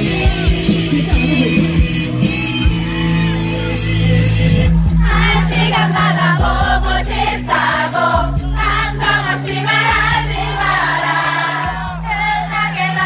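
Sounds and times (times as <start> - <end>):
person singing live pop song: 0.0 - 2.1
band backing track with bass: 0.0 - 12.6.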